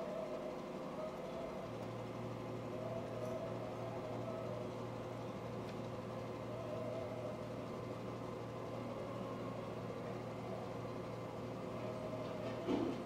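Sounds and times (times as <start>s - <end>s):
faint steady tones: 0.0s - 13.0s.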